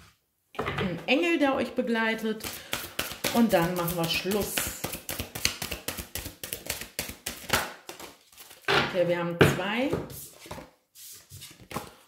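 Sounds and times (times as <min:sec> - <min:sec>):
cards shuffled by hand: 0:02.4 - 0:08.7.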